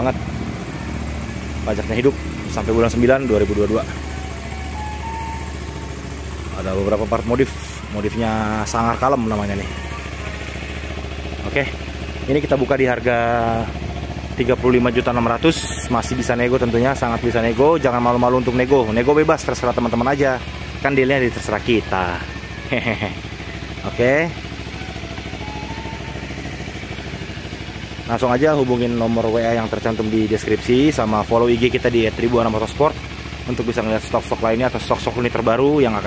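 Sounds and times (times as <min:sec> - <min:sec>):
motorcycle engine idling: 0:00.0 - 0:36.0.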